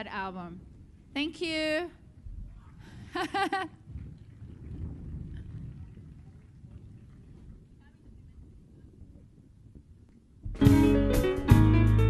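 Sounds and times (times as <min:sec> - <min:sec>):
low irregular rumbling: 0:00.0 - 0:10.7.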